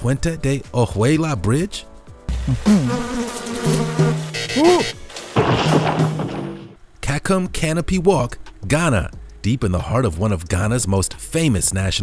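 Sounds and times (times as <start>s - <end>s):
pitch-bending buzzing tone: 2.3s - 5.0s.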